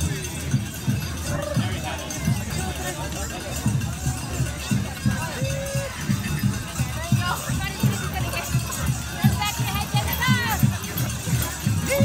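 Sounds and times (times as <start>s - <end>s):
crowd chatter: 0.0s - 12.0s
drum beating: 0.0s - 12.0s.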